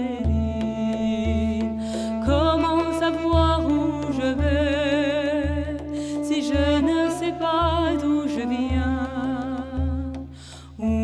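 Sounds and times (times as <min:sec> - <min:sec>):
woman singing with vibrato: 0:00.0 - 0:11.0.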